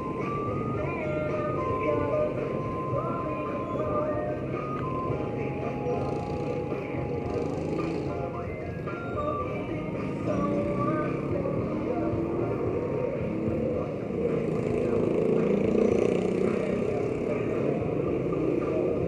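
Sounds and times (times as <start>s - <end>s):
motorcycle engines passing: 0.0s - 19.0s
music: 0.0s - 19.0s.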